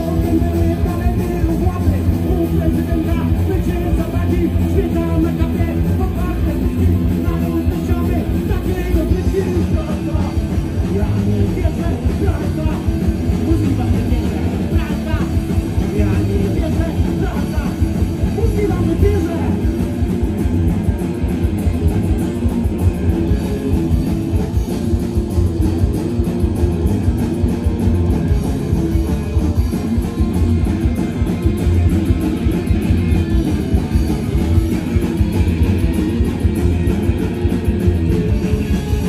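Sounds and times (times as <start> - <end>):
punk rock band playing live: 0.0 - 39.0.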